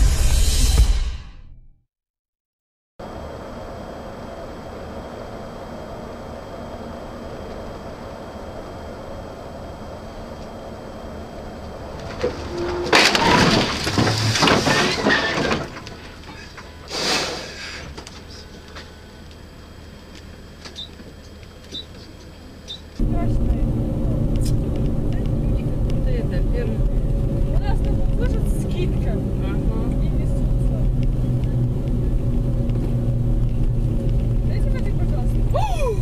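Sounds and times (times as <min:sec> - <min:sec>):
road and engine drone: 0:03.0 - 0:36.0
vehicle crash and scrape: 0:11.9 - 0:18.5.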